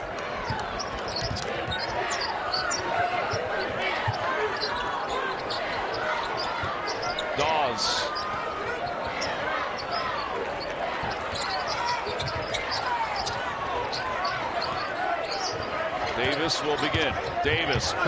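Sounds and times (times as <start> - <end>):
murmur of crowd: 0.0 - 18.0.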